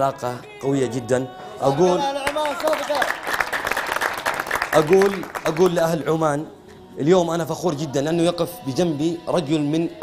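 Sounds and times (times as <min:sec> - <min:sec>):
audience applauding: 0:02.0 - 0:06.0.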